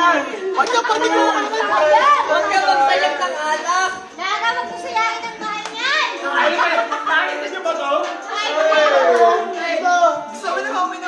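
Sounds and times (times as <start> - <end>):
people talking and shouting: 0.0 - 11.0.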